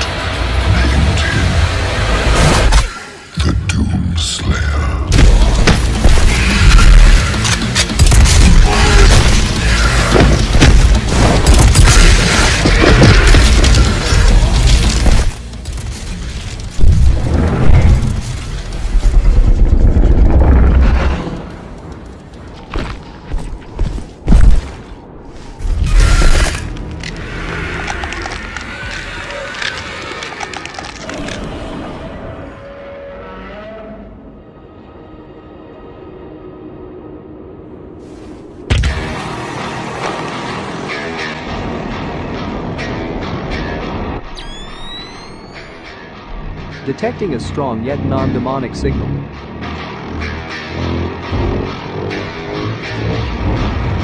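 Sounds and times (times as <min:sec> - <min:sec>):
soundtrack music: 0:00.0 - 0:22.5, 0:33.3 - 0:54.0
rumbling sound effects: 0:04.5 - 0:32.2.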